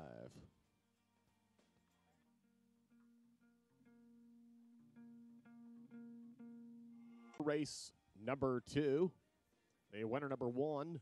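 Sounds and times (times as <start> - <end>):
plucked guitar music: 2.9 - 7.6.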